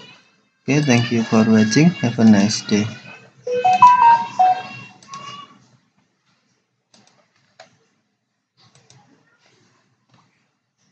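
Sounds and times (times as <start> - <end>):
electronic chime: 3.5 - 4.7.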